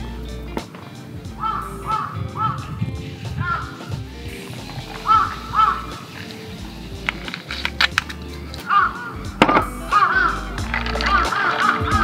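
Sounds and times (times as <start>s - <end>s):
background music: 0.0s - 12.0s
crow cawing: 1.4s - 2.6s, 3.4s - 3.8s, 5.0s - 6.1s, 8.7s - 9.2s, 11.1s - 12.0s.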